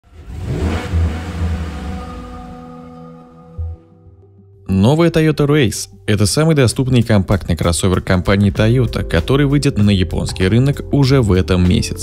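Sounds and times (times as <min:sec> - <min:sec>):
rising whoosh: 0:00.3 - 0:03.9.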